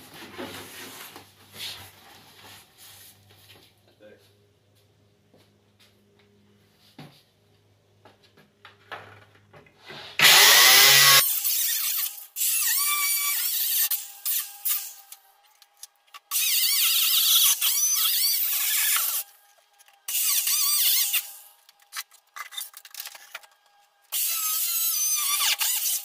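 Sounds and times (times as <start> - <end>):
angle grinder cutting sheet metal: 10.2 - 15.2, 16.2 - 21.5, 24.1 - 26.0.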